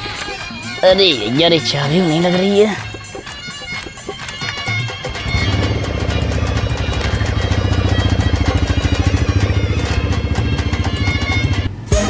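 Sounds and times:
background music: 0:00.0 - 0:12.0
motorcycle engine running: 0:03.1 - 0:11.8.

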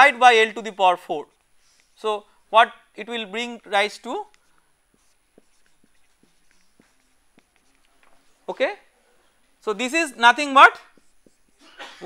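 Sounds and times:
marker pen writing on whiteboard: 0:00.1 - 0:11.8.

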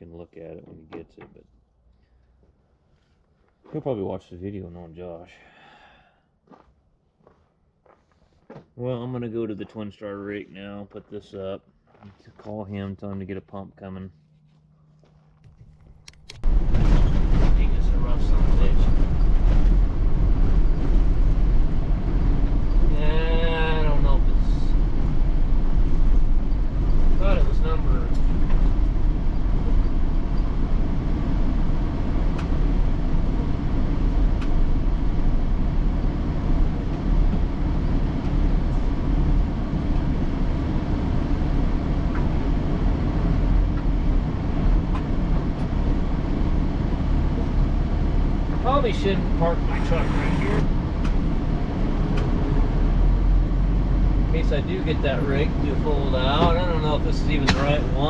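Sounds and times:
truck driving on dirt road: 0:15.0 - 0:58.0
rattles in truck cab: 0:16.4 - 0:22.9, 0:24.8 - 0:30.9.

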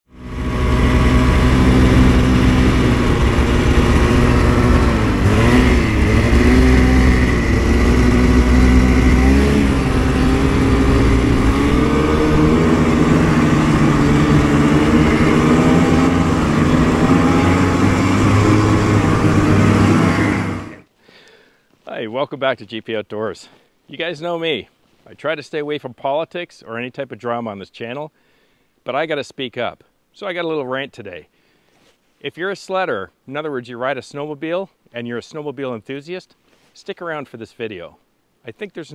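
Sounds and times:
snowmobile engine running: 0:00.1 - 0:20.8.

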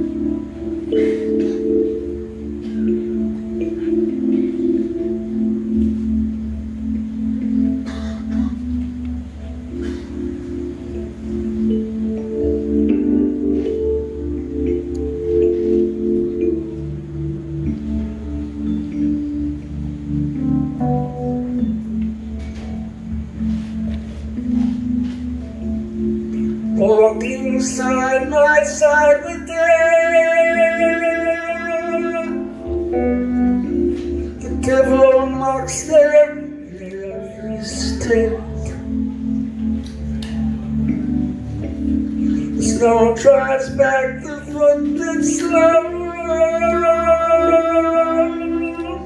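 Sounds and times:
person singing: 0:26.5 - 0:41.1, 0:42.1 - 0:49.0.

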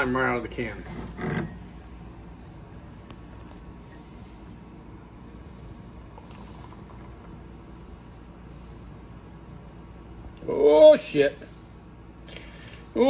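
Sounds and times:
beer pouring and foam fizzing: 0:02.1 - 0:07.6.

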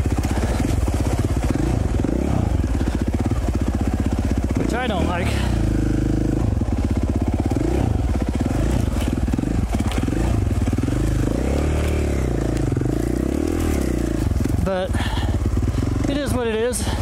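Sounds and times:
motorcycle engine revving: 0:00.0 - 0:17.0.

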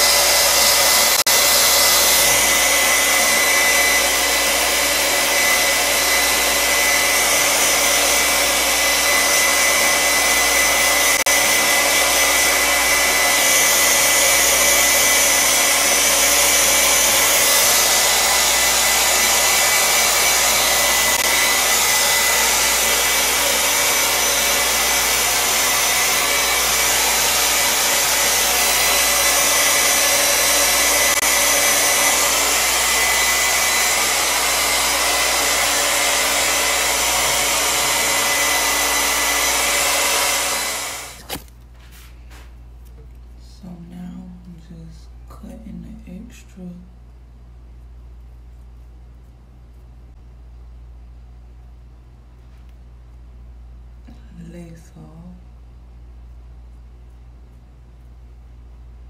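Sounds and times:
hair dryer running: 0:00.0 - 0:41.5.

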